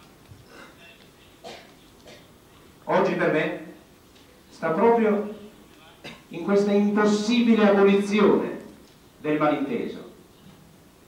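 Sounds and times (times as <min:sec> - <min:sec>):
man speaking through microphone: 0:00.6 - 0:03.9, 0:04.5 - 0:10.3.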